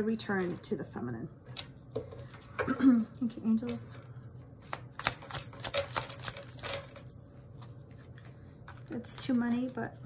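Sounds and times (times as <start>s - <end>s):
cards being shuffled: 4.5s - 6.4s, 7.4s - 10.0s.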